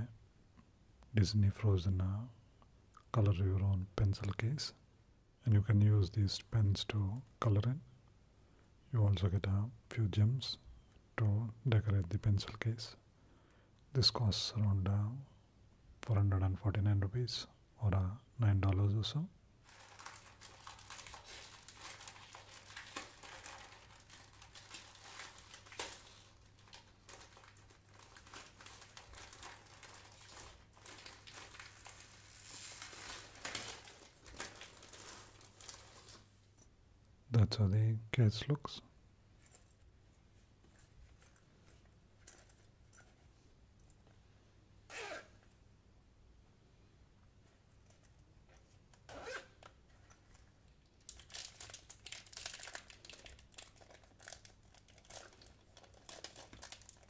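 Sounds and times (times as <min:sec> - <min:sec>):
plastic packaging crinkling: 0:19.6 - 0:36.3, 0:50.2 - 0:57.0
zipper zipping: 0:44.9 - 0:45.3, 0:49.1 - 0:49.6.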